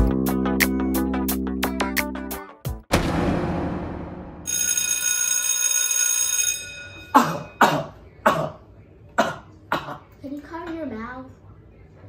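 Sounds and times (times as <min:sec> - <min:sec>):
high ringing tone: 0:04.4 - 0:07.6
person coughing: 0:07.1 - 0:08.6, 0:09.2 - 0:10.1.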